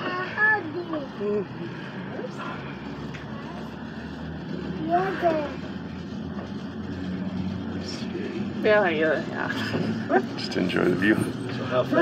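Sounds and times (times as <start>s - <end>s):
cable car hum and rumble: 0.0s - 12.0s.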